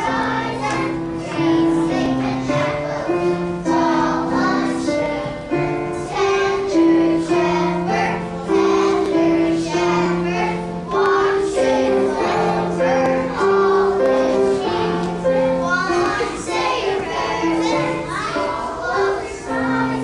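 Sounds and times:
children's choir singing: 0.0 - 20.0.

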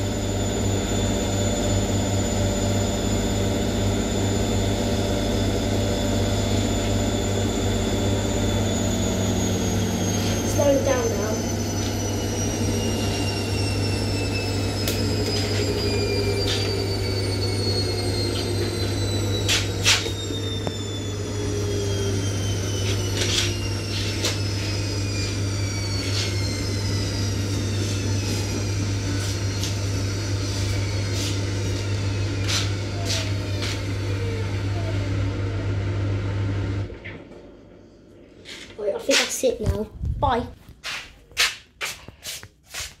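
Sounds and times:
washing machine motor whine: 0.0 - 41.0.

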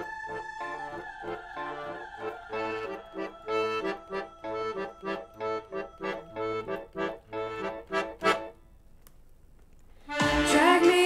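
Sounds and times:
accordion playing detached chords: 0.0 - 8.6, 10.0 - 11.0.

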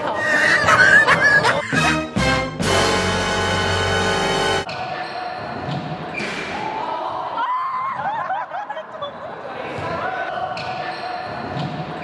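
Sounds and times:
shoes squeaking on court floor: 10.5 - 12.0.

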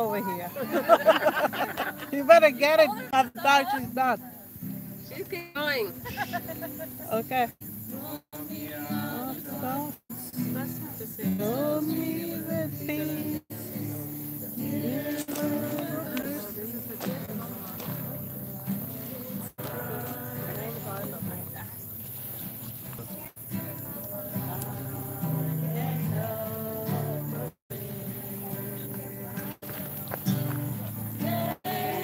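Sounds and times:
voices singing worship song: 0.0 - 22.4, 23.4 - 32.0
acoustic guitar: 0.0 - 32.0.

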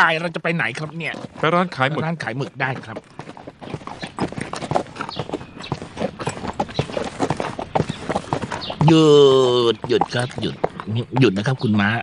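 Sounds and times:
horse hooves clip-clopping: 0.0 - 12.0.

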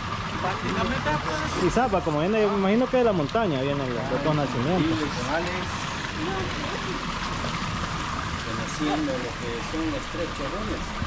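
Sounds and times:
water pouring into a channel: 0.0 - 11.0.

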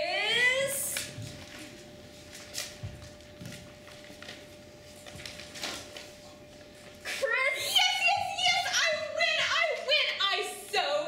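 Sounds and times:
paper rustling and crinkling: 1.0 - 7.2.

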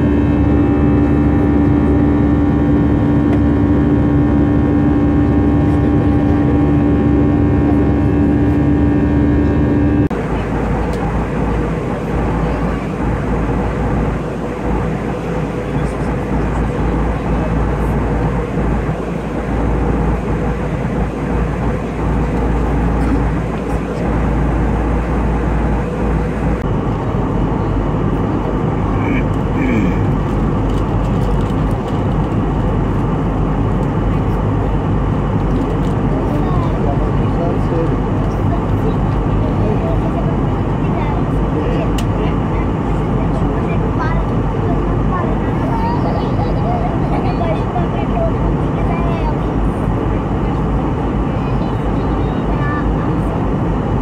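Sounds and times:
aircraft cabin engine roar: 0.0 - 54.0.

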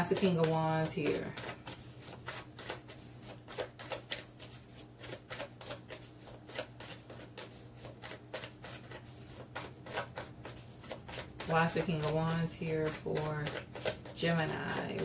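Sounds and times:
cards being shuffled: 0.4 - 12.2, 12.9 - 15.0.

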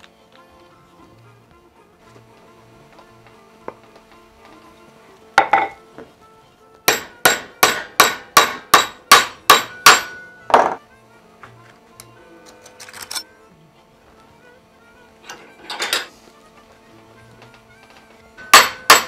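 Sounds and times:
hammer striking metal strip: 6.9 - 10.8, 18.4 - 19.0.

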